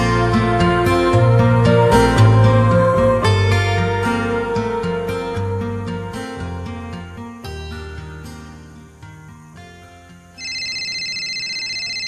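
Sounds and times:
music: 0.0 - 12.0
electronic telephone ringing: 10.4 - 12.0.

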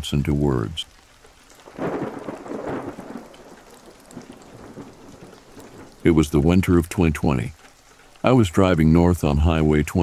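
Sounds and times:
rain: 0.0 - 10.0
thunder rolling: 1.7 - 7.6.

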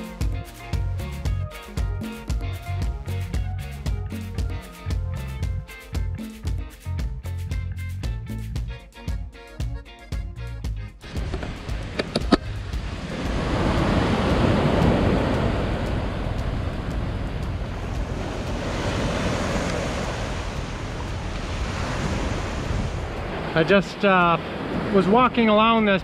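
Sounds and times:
waves washing up pebble beach: 11.0 - 26.0
sharp clicks: 11.2 - 12.5.

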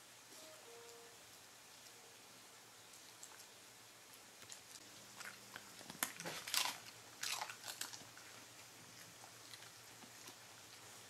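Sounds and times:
dog crunching a pretzel: 2.9 - 11.0
faint chewing clicks: 2.9 - 11.0.

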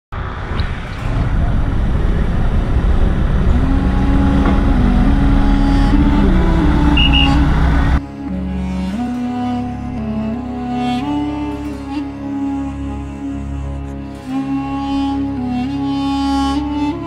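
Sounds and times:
street traffic: 0.1 - 8.3
truck engine rumbling: 0.1 - 16.9
slow melody of held notes: 1.7 - 17.0
short high beeps: 7.0 - 7.5.

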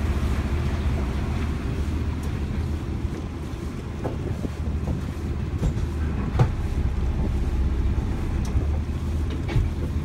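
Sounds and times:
boat engine rumbling: 0.0 - 10.0.

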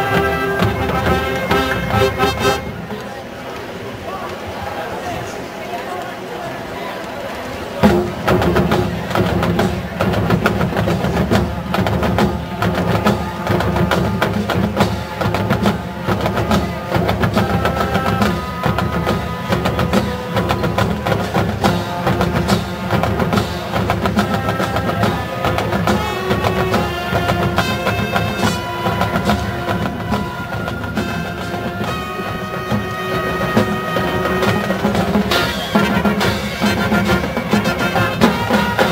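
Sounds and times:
drumline steady rhythm: 0.0 - 4.4, 7.4 - 38.9
marching band brass and winds: 0.0 - 38.9.

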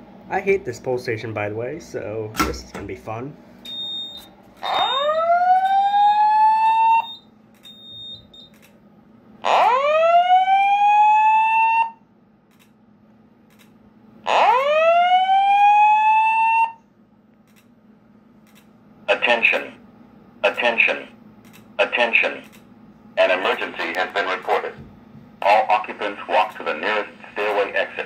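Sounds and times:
fire alarm whooping tone: 3.7 - 8.5, 9.4 - 12.0, 14.3 - 16.8.

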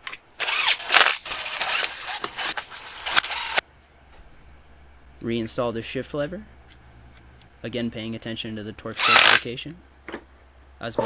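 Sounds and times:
hand ratchet clicking: 0.0 - 3.6.

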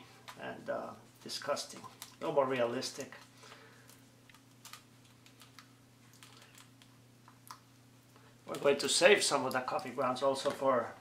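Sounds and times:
low steady hum: 0.0 - 11.0
plastic coffee pod crackling: 0.2 - 10.8.

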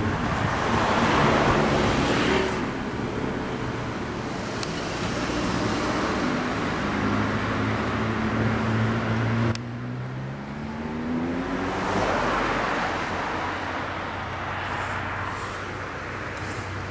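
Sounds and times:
vehicle engines pulling away: 0.1 - 16.9.

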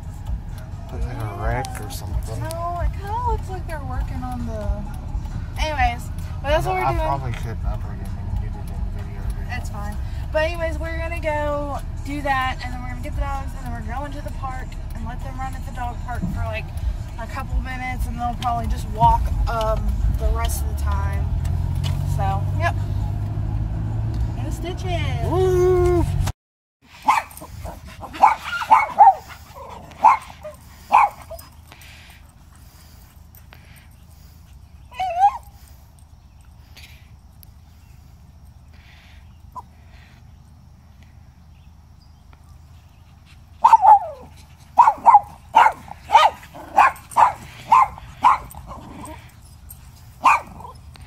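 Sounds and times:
dogs barking: 26.9 - 33.1, 33.7 - 35.8, 43.1 - 51.0.

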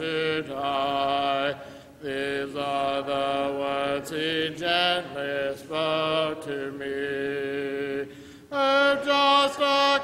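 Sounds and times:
congregation singing a hymn: 0.0 - 10.0.

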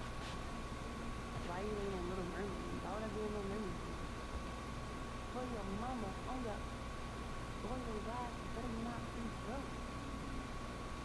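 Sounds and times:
low background hum: 0.0 - 11.0
woman talking softly: 1.4 - 3.9, 5.4 - 6.6, 7.6 - 10.4.

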